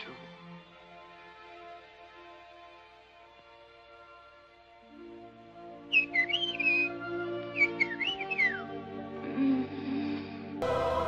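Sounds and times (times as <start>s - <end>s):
soft orchestral chords: 6.7s - 11.0s.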